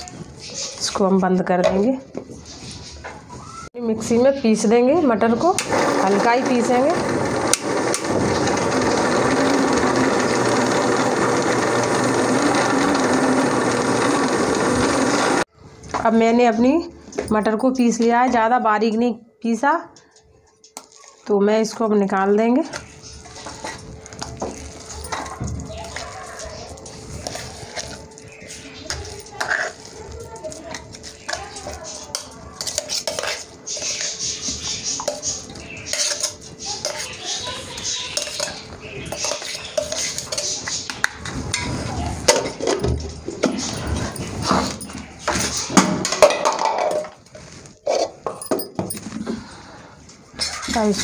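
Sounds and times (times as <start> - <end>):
metal spoon scraping steel jar: 27.2 - 30.0, 35.0 - 37.2, 38.1 - 40.7.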